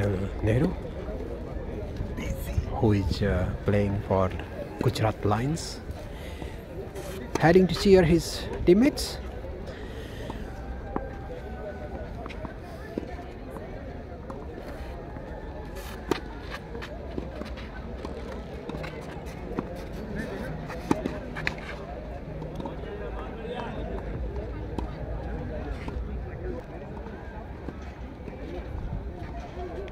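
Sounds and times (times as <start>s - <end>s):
faint voices: 0.0s - 29.9s.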